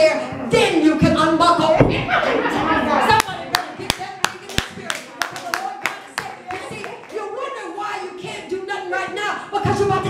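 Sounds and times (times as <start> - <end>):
rhythmic hand clapping: 3.2 - 7.2.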